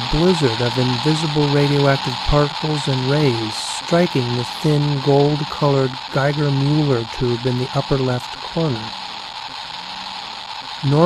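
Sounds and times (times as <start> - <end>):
geiger counter crackling: 0.0 - 11.0.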